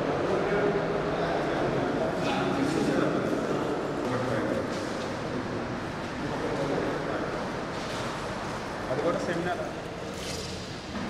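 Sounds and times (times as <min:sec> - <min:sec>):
people chattering: 0:00.0 - 0:07.5.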